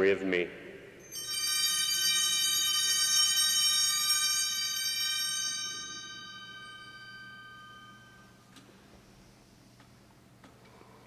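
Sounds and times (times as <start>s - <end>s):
altar bells ringing: 1.0s - 8.6s.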